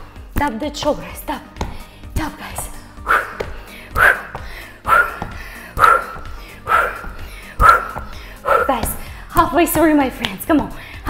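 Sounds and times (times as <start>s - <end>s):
workout music: 0.0s - 11.0s.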